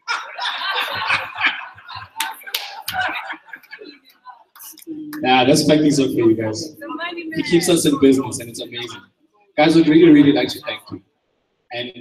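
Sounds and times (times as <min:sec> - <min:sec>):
people laughing: 0:00.0 - 0:09.0, 0:09.6 - 0:11.0
sharp claps: 0:02.0 - 0:03.8.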